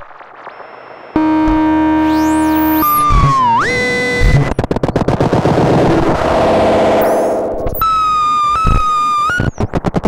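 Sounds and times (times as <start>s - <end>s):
synthesizer rattling clicks and buzz: 0.0s - 10.0s
high-pitched synthesizer tone: 1.2s - 4.6s, 5.6s - 9.1s
synthesizer swooping glide: 5.2s - 7.9s.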